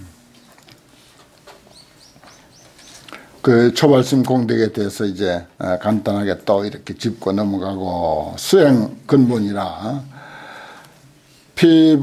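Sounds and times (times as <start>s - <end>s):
small bird chirping: 1.6s - 3.1s.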